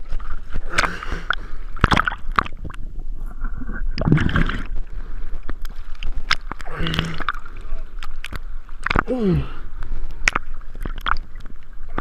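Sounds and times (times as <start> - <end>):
water churning and bubbling: 0.0 - 12.0
sharp clicks underwater: 0.1 - 2.9, 5.4 - 9.1, 9.8 - 12.0.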